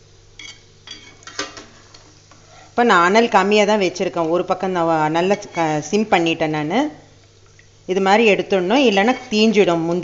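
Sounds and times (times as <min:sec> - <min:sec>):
metal spoon scraping pan: 0:05.2 - 0:06.4, 0:08.8 - 0:09.7.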